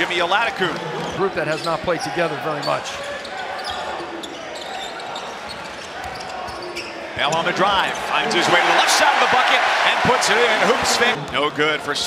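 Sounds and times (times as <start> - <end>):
murmur of indoor crowd: 0.0 - 12.0.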